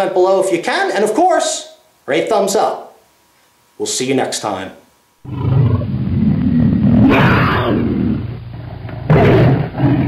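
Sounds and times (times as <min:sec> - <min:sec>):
big cat roaring: 0:05.2 - 0:10.0.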